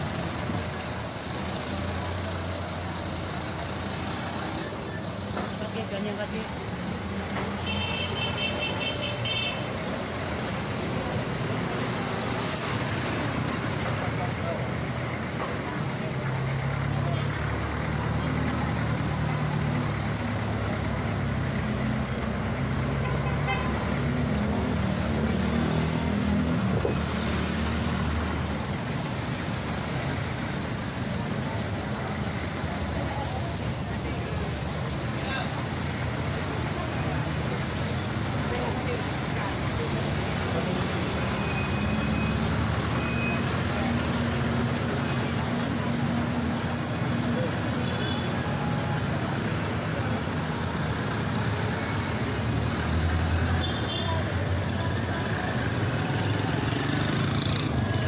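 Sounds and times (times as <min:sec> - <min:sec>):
motorcycles and cars passing: 0:00.0 - 0:58.0.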